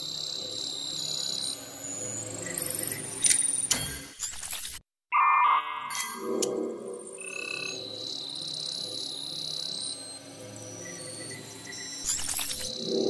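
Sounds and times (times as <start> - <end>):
steady high tone: 5.1 - 8.2
high chirping sound effects: 5.2 - 8.1.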